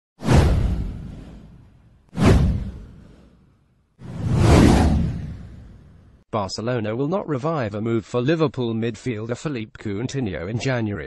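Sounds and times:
deep whoosh sound effects: 0:00.2 - 0:06.2.

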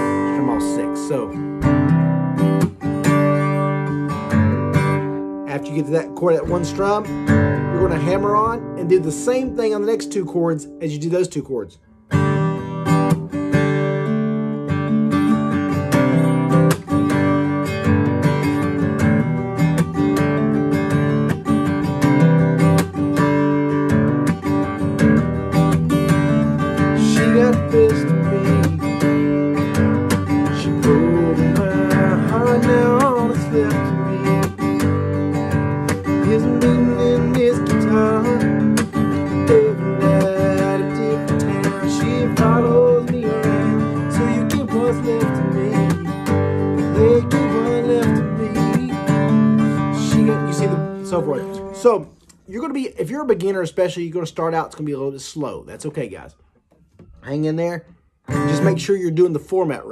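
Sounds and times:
acoustic guitar strummed: 0:00.0 - 0:59.9.

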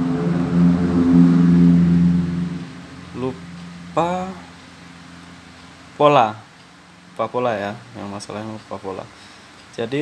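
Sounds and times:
vehicle engine humming: 0:00.0 - 0:07.2.

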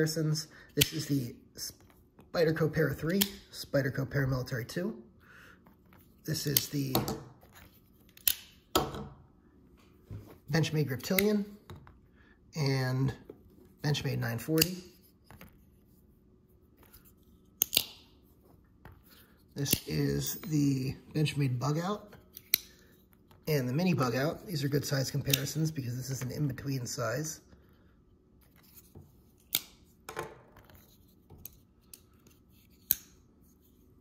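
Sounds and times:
folding knife sharp clicks: 0:17.6 - 0:18.0.

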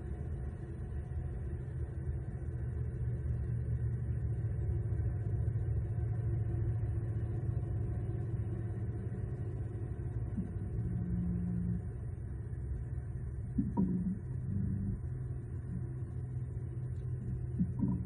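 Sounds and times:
steady low rumble: 0:00.0 - 0:18.0.

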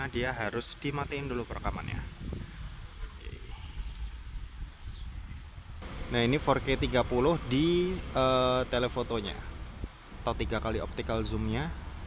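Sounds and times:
low uneven rumble: 0:01.2 - 0:12.0.

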